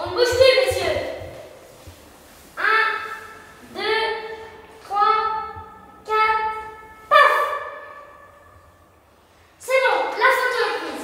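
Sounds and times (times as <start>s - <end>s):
high voice calling out: 2.6s - 8.6s.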